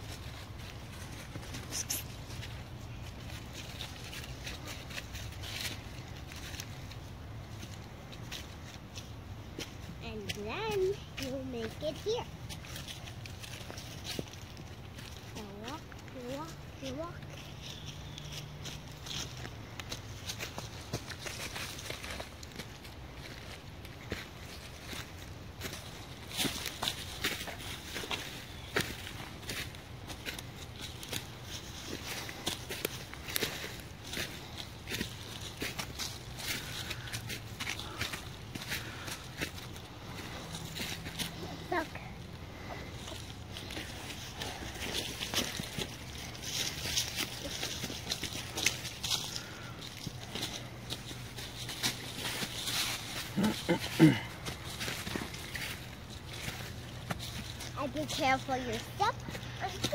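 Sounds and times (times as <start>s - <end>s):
footsteps crunching through dry leaves: 0.0s - 59.9s
person clearing throat: 53.4s - 54.4s.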